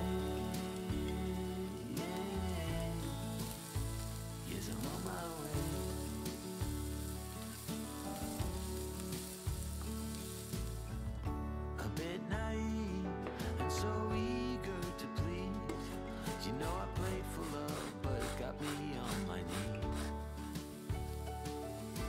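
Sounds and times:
vegetables sizzling in a frying pan: 0:00.0 - 0:11.2, 0:19.5 - 0:22.0
background music: 0:00.0 - 0:22.0.

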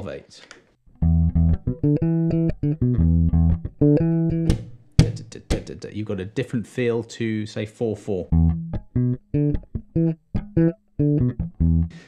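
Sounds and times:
electric bass guitar plucked: 0:00.9 - 0:05.7, 0:08.3 - 0:12.0.

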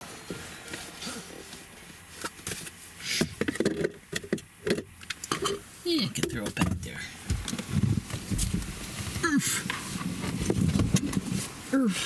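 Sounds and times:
rustling and knocks: 0:06.2 - 0:11.6.

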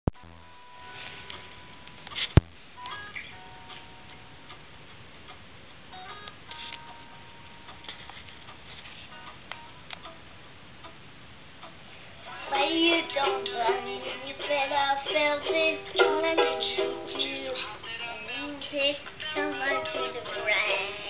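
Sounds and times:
strummed ukulele chords: 0:11.6 - 0:18.2, 0:19.0 - 0:21.0
plucked ukulele notes: 0:12.9 - 0:17.7, 0:19.4 - 0:20.8.

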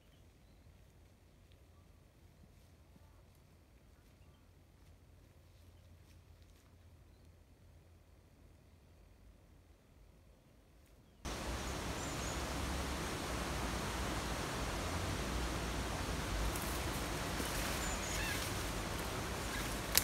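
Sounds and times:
faint bird chirps: 0:11.2 - 0:19.9
wind on microphone: 0:11.3 - 0:20.0.

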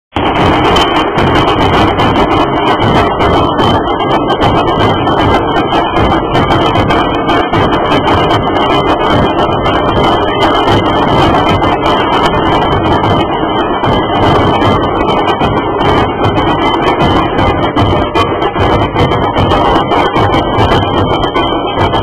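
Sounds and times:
dhol drums beaten together: 0:00.1 - 0:22.0.

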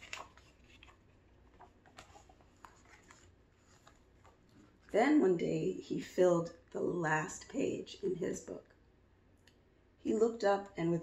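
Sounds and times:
book page turning: 0:00.0 - 0:05.0.

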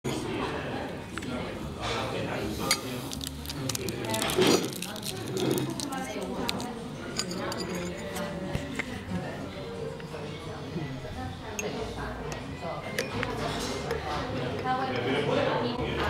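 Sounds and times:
china and cutlery clinking: 0:01.8 - 0:10.4, 0:11.5 - 0:15.2.

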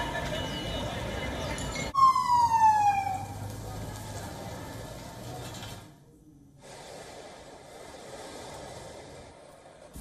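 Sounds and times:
street noise: 0:00.0 - 0:10.0
siren wail falling in pitch: 0:02.0 - 0:03.4.

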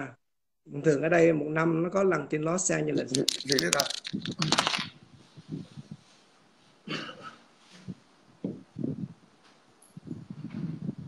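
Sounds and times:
phone handling clicks and rustles: 0:03.0 - 0:05.0.

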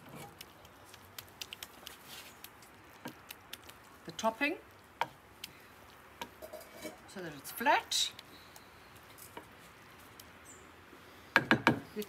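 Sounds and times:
wooden spoon scraping dish: 0:06.4 - 0:07.0.

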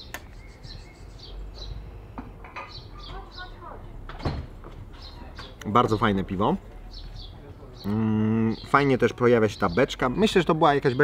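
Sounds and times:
songbirds chirping: 0:00.0 - 0:11.0.

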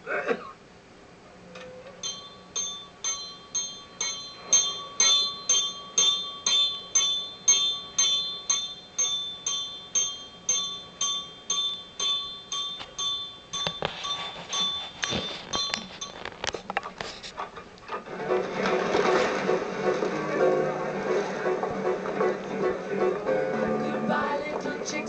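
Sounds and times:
bell striking: 0:02.0 - 0:16.2.

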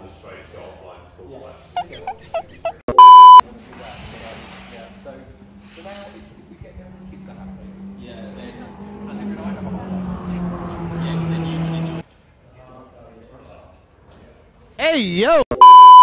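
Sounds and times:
loud electronic beep: 0:02.9 - 0:03.4, 0:15.5 - 0:16.0
short electronic chirps: 0:02.9 - 0:03.4.

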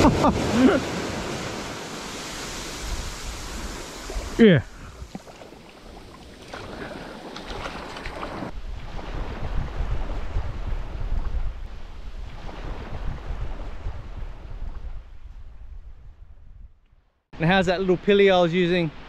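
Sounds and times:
surf washing over sand: 0:00.0 - 0:14.7
wind buffeting microphone: 0:02.6 - 0:16.8.

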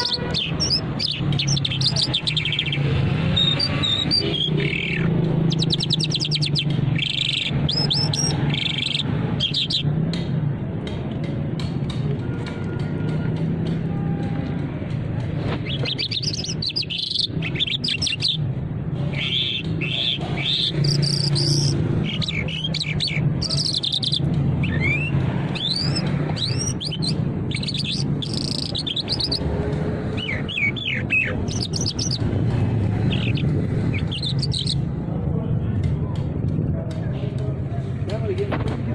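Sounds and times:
songbird singing: 0:00.0 - 0:09.9, 0:15.5 - 0:34.9.

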